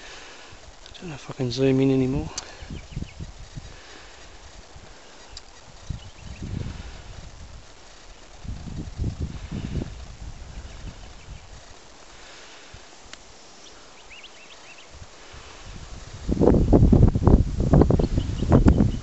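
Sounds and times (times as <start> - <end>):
wind buffeting microphone: 0.0 - 13.3, 14.1 - 19.0
faint bird chirps: 2.4 - 3.4, 4.9 - 6.6, 10.5 - 11.6, 13.3 - 15.0, 17.9 - 19.0.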